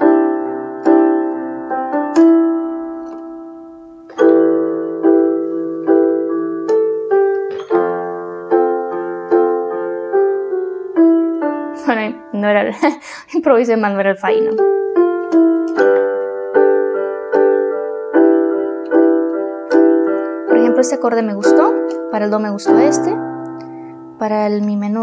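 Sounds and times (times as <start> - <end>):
electronic keyboard piano chords: 0.0 - 25.0.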